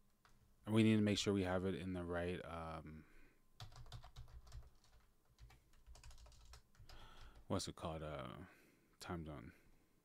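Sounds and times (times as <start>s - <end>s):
typing on computer keyboard: 3.6s - 7.5s.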